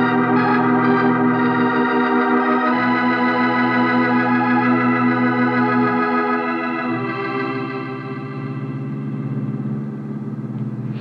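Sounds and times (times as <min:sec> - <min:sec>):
organ chord: 0:00.0 - 0:11.0
car engine rumbling: 0:06.8 - 0:11.0.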